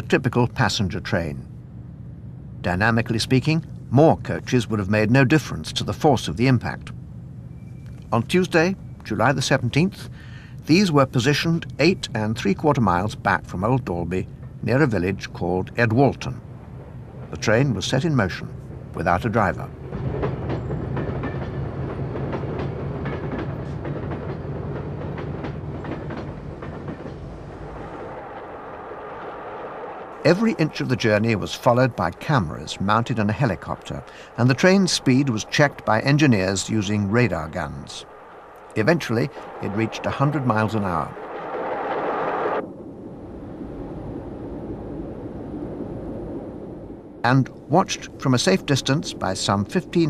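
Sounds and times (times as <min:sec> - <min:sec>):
diesel locomotive engine: 0:00.0 - 0:50.0
train wheels clicking over rail joints: 0:07.8 - 0:42.5
loud rushing noise: 0:27.3 - 0:49.7.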